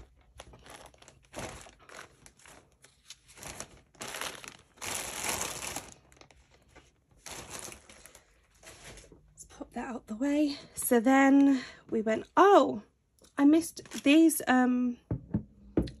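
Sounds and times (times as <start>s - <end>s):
plastic bag crinkling: 0.0s - 9.2s.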